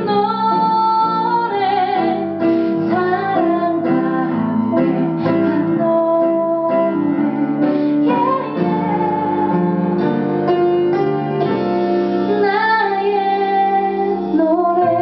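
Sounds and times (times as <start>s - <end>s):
woman singing slow melody: 0.0s - 10.2s, 12.3s - 15.0s
guitar: 0.0s - 15.0s
piano: 0.0s - 15.0s.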